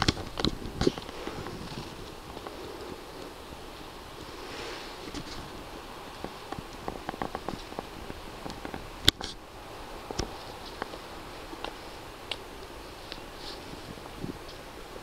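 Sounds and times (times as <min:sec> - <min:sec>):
wind hiss: 0:00.0 - 0:15.0.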